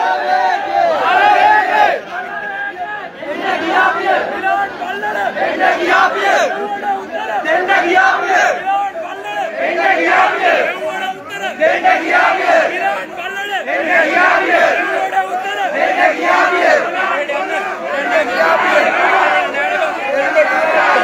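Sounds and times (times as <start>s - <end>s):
crowd of men shouting: 0.0s - 21.0s.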